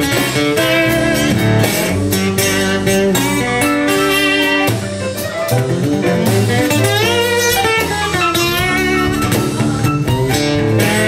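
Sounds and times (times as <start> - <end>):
blues guitar with bending notes: 0.0 - 11.0
drums: 0.0 - 11.0
keyboards: 0.0 - 11.0.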